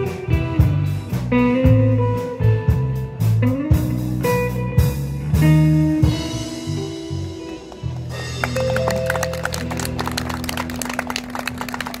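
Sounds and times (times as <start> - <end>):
instrumental guitar band: 0.0 - 12.0.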